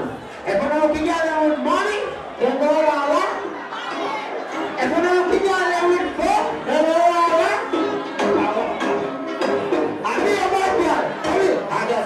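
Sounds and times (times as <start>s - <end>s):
man speaking over loudspeaker: 0.0s - 3.6s, 4.7s - 8.9s, 9.9s - 12.0s
crowd chatter: 0.0s - 12.0s.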